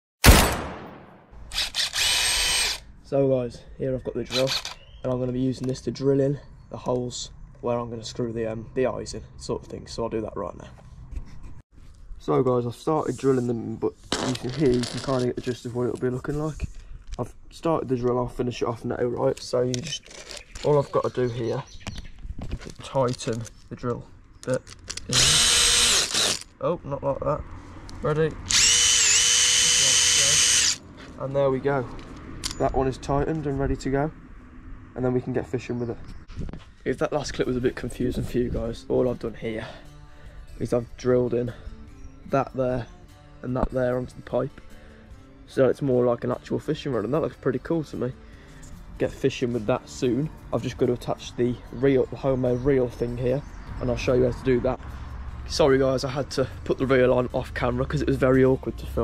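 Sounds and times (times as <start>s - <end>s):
cordless drill motor whining: 1.5s - 2.9s, 4.3s - 4.9s, 25.1s - 26.5s, 28.5s - 30.8s.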